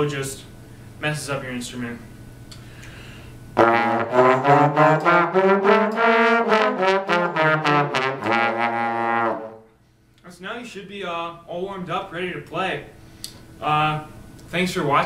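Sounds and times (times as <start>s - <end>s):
trombones playing a scale: 3.6s - 9.7s.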